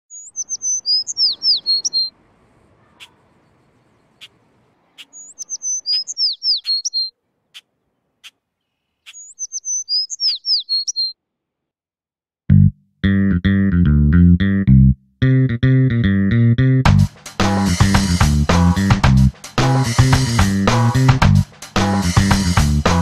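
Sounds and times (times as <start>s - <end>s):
sharp bird call notes: 0.1s - 2.1s, 2.8s - 11.2s
songbird whistling phrase: 0.1s - 2.1s, 5.0s - 7.1s, 9.1s - 11.2s.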